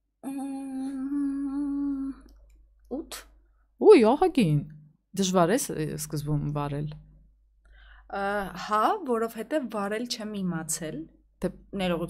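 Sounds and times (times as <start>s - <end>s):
woman humming: 0.2s - 2.4s.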